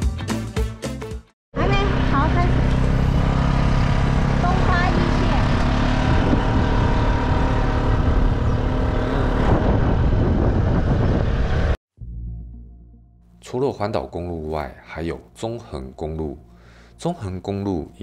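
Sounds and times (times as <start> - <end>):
motor scooter engine drone: 1.6 - 11.8
wind noise on microphone: 4.9 - 11.8.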